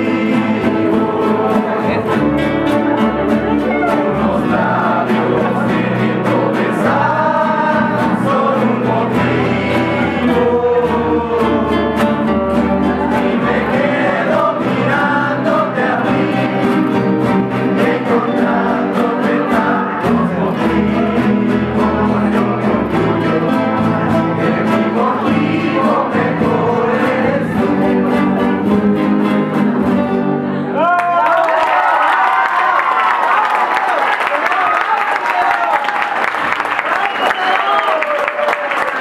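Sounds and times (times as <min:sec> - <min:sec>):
voices singing: 0:00.0 - 0:30.1
acoustic guitars strummed: 0:00.0 - 0:30.8
upright bass: 0:00.0 - 0:30.9
audience applauding and cheering: 0:30.8 - 0:39.0.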